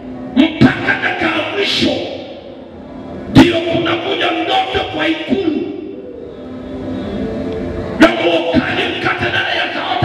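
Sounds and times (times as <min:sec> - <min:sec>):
man speaking through microphone: 0:00.4 - 0:02.2, 0:03.4 - 0:05.8, 0:08.0 - 0:10.0.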